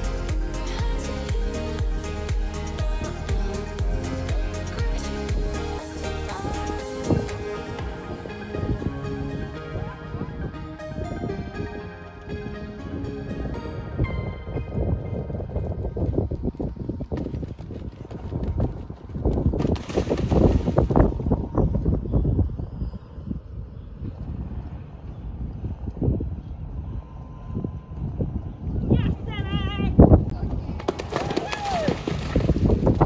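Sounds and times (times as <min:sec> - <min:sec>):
background music: 0:00.0 - 0:16.1
wind buffeting microphone: 0:06.3 - 0:33.0.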